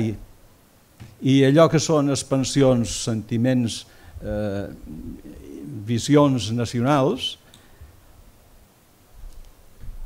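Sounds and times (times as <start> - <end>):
quiet low voice sounds: 4.2 - 5.9
man's drawn-out hesitation vowel: 4.2 - 6.1.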